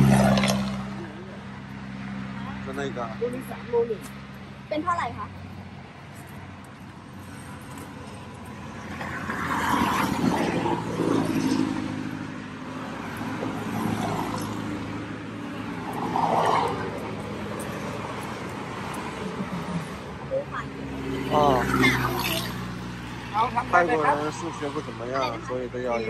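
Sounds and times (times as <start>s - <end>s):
vehicles passing: 0.0s - 26.0s.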